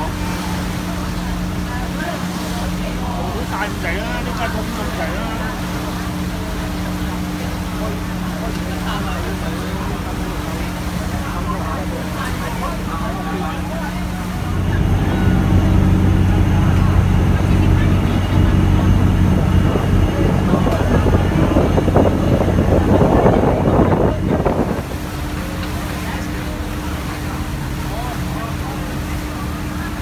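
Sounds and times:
boat engine droning: 0:00.0 - 0:30.0
voices chattering: 0:00.0 - 0:30.0
water noise: 0:00.0 - 0:30.0
wind noise: 0:18.6 - 0:25.0.

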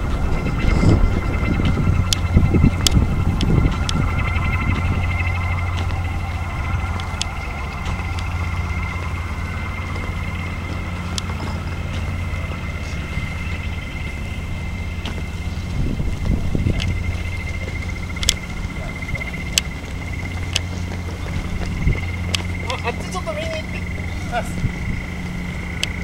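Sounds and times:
high steady whine: 0:00.0 - 0:26.0
low mechanical hum: 0:00.0 - 0:26.0.

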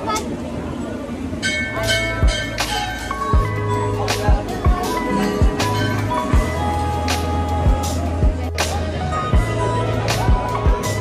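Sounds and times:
crowd chatter: 0:00.0 - 0:11.0
steady high tones: 0:01.4 - 0:11.0.

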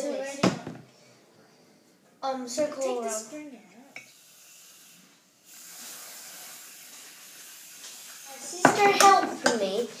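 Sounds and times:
whipped cream can spraying: 0:04.4 - 0:08.5.

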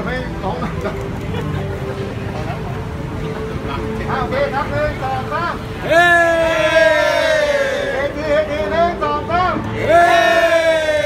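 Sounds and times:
group of people shouting: 0:05.8 - 0:08.0, 0:09.8 - 0:11.0.

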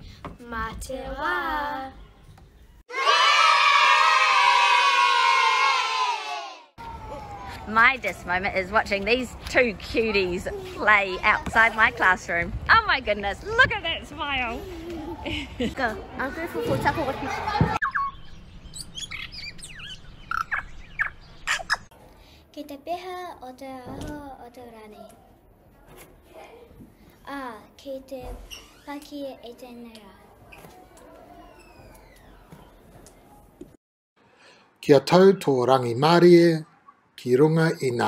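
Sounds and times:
birds chirping: 0:00.0 - 0:02.8, 0:17.0 - 0:21.9
children cheering: 0:02.9 - 0:07.7.

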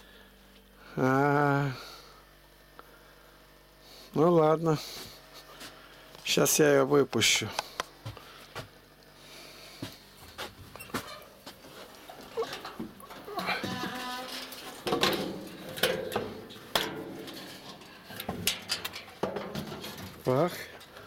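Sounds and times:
handling noise and knocks: 0:10.6 - 0:20.3
cat yowling: 0:13.2 - 0:14.4.

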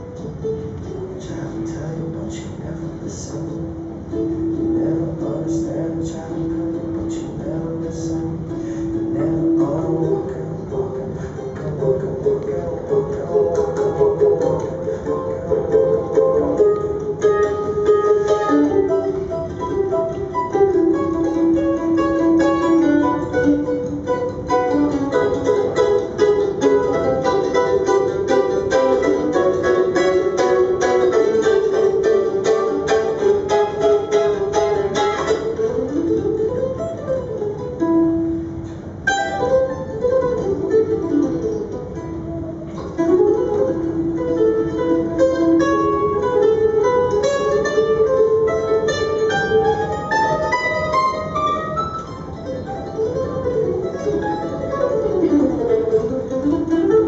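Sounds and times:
solo mandolin playing: 0:00.0 - 0:57.0.

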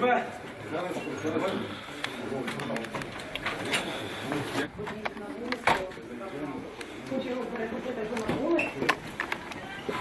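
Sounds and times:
men muttering: 0:01.0 - 0:04.8.

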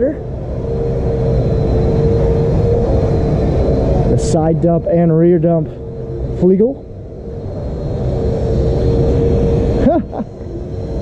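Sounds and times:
low rumble: 0:00.0 - 0:11.0
vacuum cleaner running: 0:00.0 - 0:11.0.

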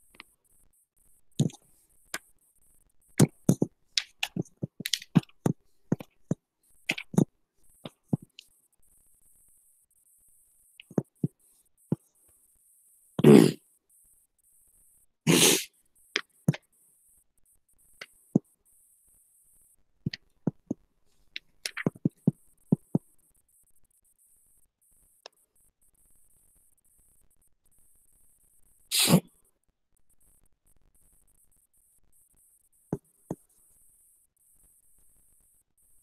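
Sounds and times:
person sneezing: 0:13.2 - 0:13.6, 0:15.3 - 0:15.7, 0:28.9 - 0:29.2.

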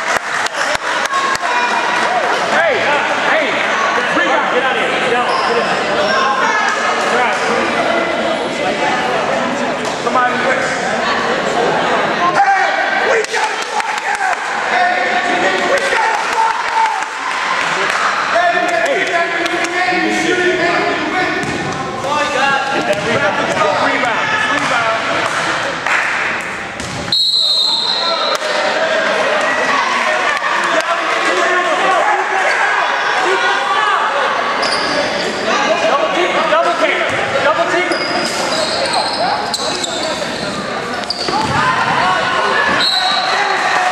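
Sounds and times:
shouts and chatter: 0:00.0 - 0:43.9.

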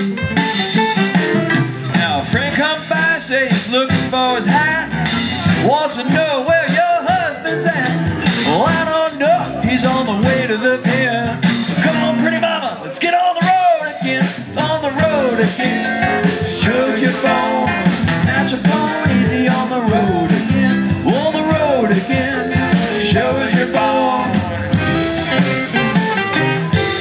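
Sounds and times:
electric guitar: 0:00.0 - 0:13.0, 0:14.0 - 0:27.0
strummed acoustic guitars: 0:00.0 - 0:27.0
person singing: 0:01.9 - 0:27.0.

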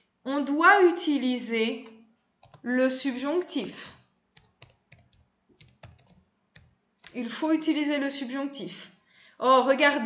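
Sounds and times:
computer keyboard typing: 0:02.4 - 0:02.7, 0:03.9 - 0:07.2.

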